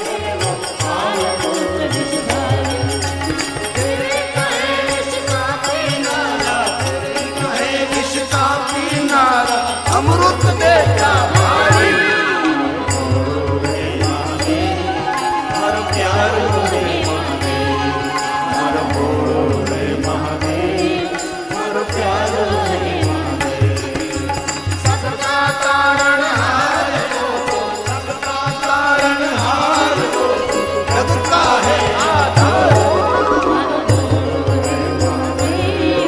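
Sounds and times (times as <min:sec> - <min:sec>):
instrumental accompaniment: 0:00.0 - 0:36.0
man singing devotional song: 0:00.0 - 0:36.0
regular percussion beat: 0:00.0 - 0:36.0.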